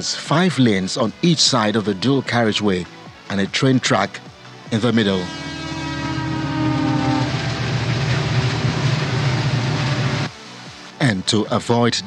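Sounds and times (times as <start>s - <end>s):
train horn: 5.0s - 10.3s
train rumbling on track: 5.3s - 10.3s.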